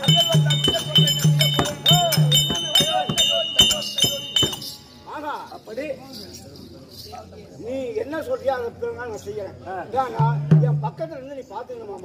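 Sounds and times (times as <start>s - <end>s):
drum strokes: 0.0s - 4.8s
man's voice: 0.0s - 6.3s
hand cymbals clinking: 0.0s - 8.3s.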